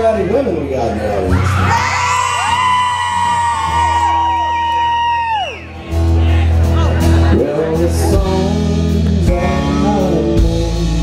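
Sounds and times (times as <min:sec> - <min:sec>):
crowd yelling: 0:01.2 - 0:07.4
women whooping: 0:01.3 - 0:05.8.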